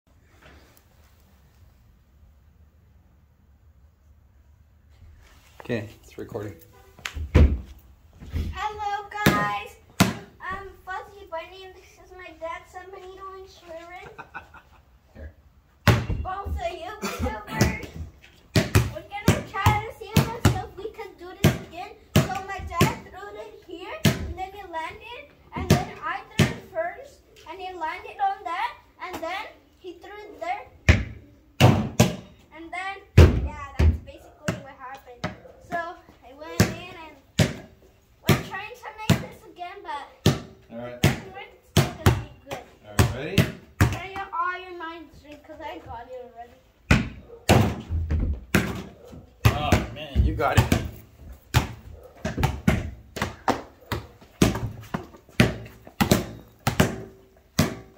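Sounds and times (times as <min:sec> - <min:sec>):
people talking: 0:08.6 - 0:09.8, 0:10.4 - 0:14.4, 0:16.1 - 0:18.0, 0:18.9 - 0:30.6
basketball bouncing on concrete: 0:09.2 - 0:10.7, 0:15.8 - 0:23.1, 0:24.0 - 0:24.4, 0:25.6 - 0:26.7, 0:30.8 - 0:32.4, 0:33.2 - 0:39.4, 0:40.2 - 0:44.6, 0:46.9 - 0:57.9.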